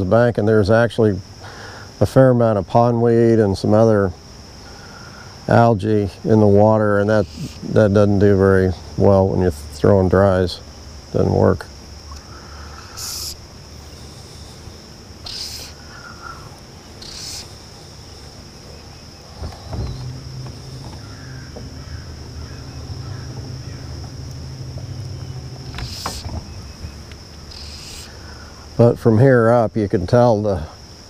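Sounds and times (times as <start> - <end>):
low steady hum: 0.0 - 29.4
insects chirring: 0.0 - 31.0
fly line swishing: 17.0 - 28.2.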